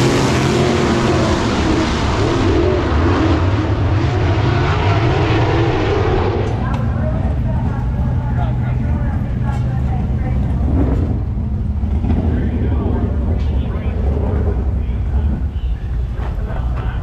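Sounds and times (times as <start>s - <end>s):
race car engines droning: 0.0s - 17.0s
indistinct voices: 11.9s - 17.0s.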